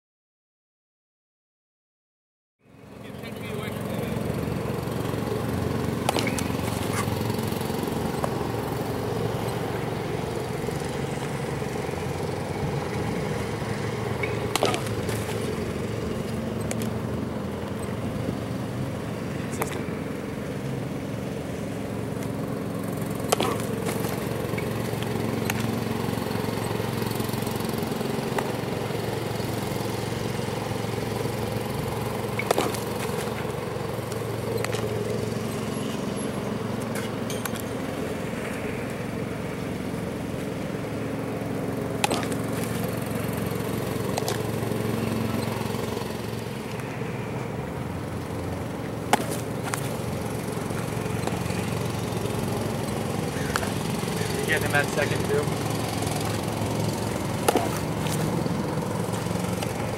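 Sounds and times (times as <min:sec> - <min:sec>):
small engine running: 0:02.6 - 0:59.9
baseball smacking into mitt: 0:06.0 - 0:07.2, 0:14.4 - 0:15.5, 0:23.2 - 0:25.8, 0:32.4 - 0:33.4, 0:42.0 - 0:42.9, 0:49.1 - 0:50.0, 0:56.1 - 0:58.3.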